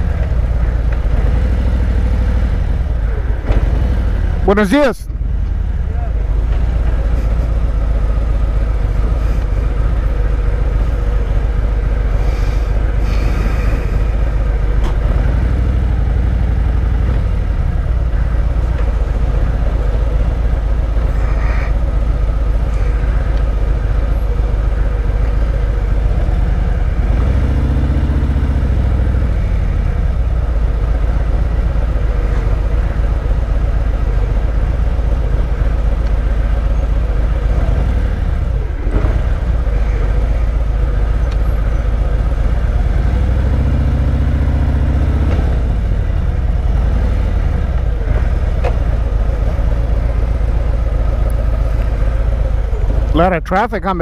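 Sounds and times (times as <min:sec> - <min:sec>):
motorcycle engine rumbling: 0:00.0 - 0:53.9.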